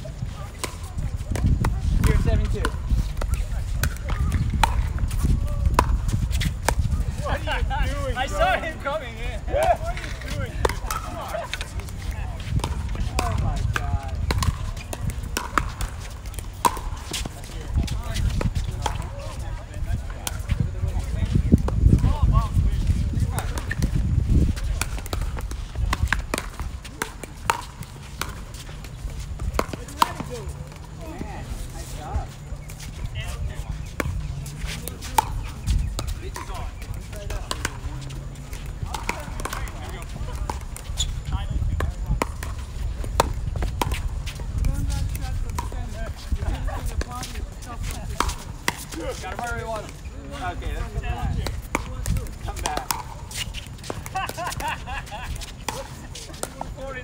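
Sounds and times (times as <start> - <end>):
players' voices: 0.0 - 57.0
paddles hitting plastic ball: 0.5 - 7.4, 9.9 - 19.1, 20.0 - 31.2, 33.8 - 56.7.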